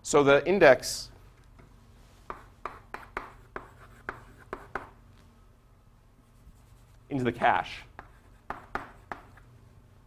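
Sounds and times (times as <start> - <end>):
chalk writing on a blackboard: 2.2 - 5.0, 6.4 - 9.5.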